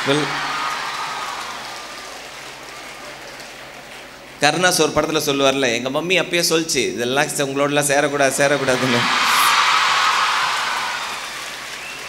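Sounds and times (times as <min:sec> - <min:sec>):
audience applause: 0:00.0 - 0:04.4, 0:08.4 - 0:12.0.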